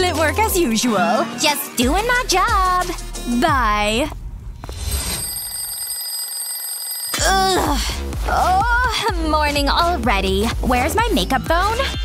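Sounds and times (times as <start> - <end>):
alarm clock bells ringing: 4.9 - 7.2.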